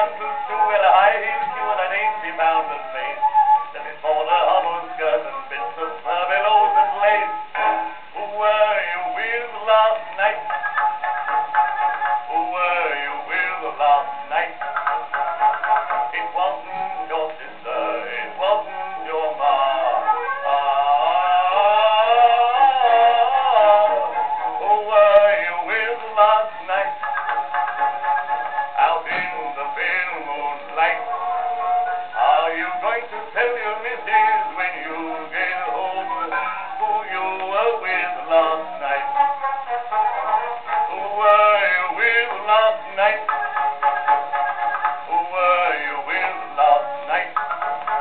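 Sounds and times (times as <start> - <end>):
man singing with orchestra: 0.0 - 10.8, 12.2 - 48.0.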